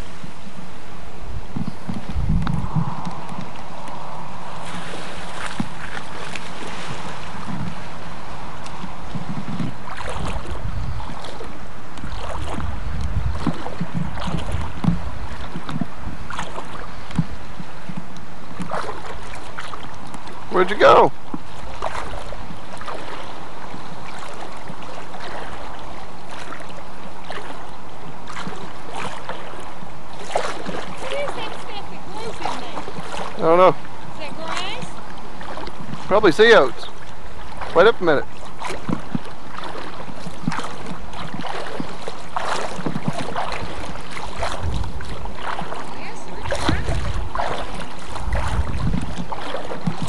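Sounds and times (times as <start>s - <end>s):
water lapping at shore: 0.0s - 50.0s
wind noise on microphone: 0.0s - 50.0s
low bumps and thumps: 1.4s - 7.9s, 12.4s - 16.2s, 42.6s - 50.0s.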